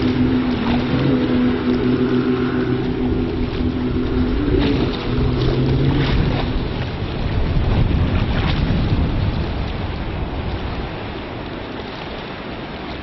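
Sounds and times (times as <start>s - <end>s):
outboard motor drone: 0.0s - 13.0s.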